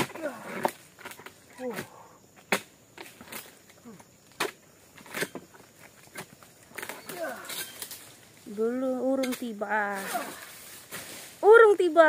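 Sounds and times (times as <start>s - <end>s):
chisel chopping palm stalks: 0.0s - 3.5s.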